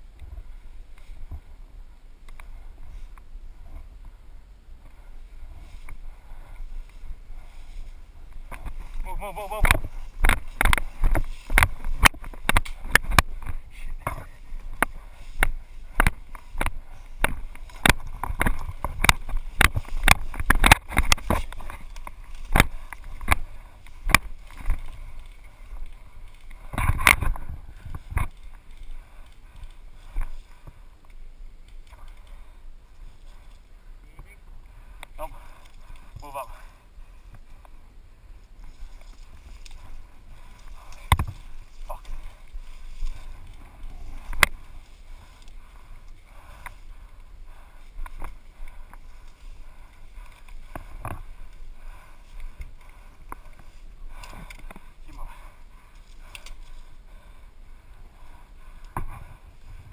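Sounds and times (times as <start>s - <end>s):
footsteps in tall grass: 4.8s - 59.9s.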